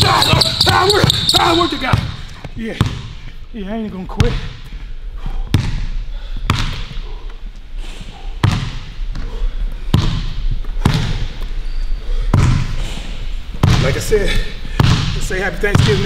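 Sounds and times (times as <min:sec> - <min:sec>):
basketball bouncing on wooden floor: 0:00.0 - 0:02.2, 0:02.8 - 0:03.1, 0:05.5 - 0:05.8, 0:06.5 - 0:06.9, 0:08.4 - 0:09.2, 0:09.9 - 0:11.2, 0:12.3 - 0:12.6, 0:13.6 - 0:13.9, 0:14.8 - 0:16.0.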